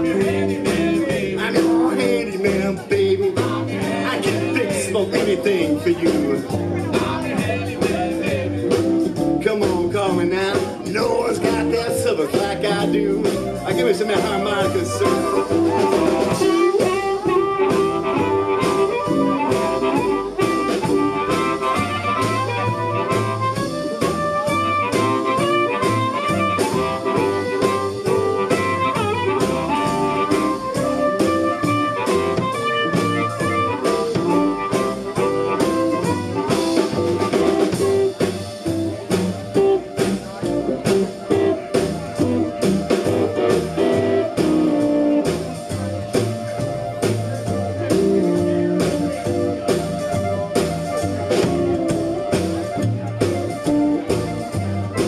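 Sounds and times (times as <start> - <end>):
drum kit: 0.0 - 55.0
electric guitar: 0.0 - 55.0
upright bass: 0.0 - 55.0
amplified harmonica: 13.0 - 55.0.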